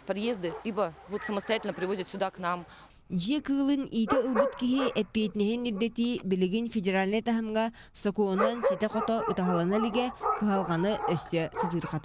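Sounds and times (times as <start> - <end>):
dogs barking and whining: 4.0 - 6.1, 8.3 - 12.0.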